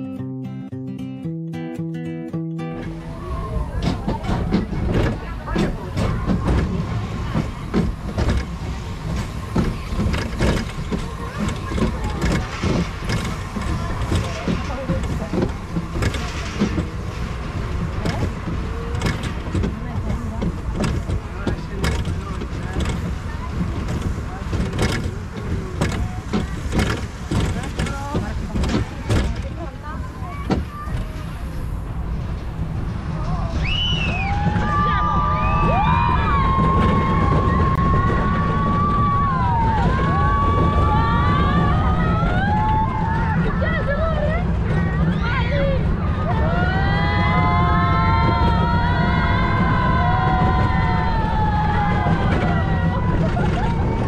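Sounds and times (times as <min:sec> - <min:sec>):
roller coaster rumbling on track: 0:02.6 - 0:54.0
clattering clicks and knocks: 0:03.8 - 0:31.2.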